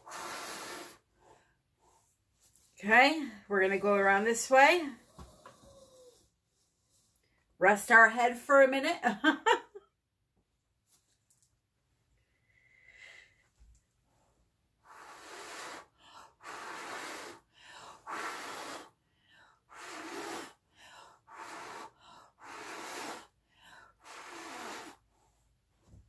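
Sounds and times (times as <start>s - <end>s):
airy puffs of breath: 0.0s - 2.2s, 14.8s - 25.4s
quick breaths in: 0.0s - 2.2s.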